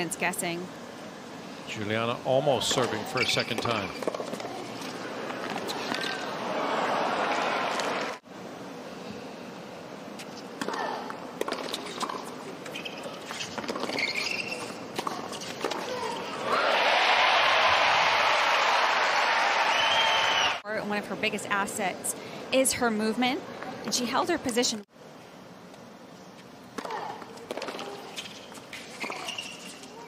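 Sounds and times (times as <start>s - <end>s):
crowd applause and cheering: 6.3s - 8.2s, 16.4s - 20.6s.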